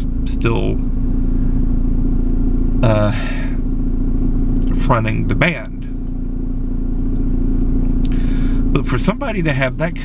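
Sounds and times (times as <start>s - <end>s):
car running from inside cabin: 0.0s - 10.0s.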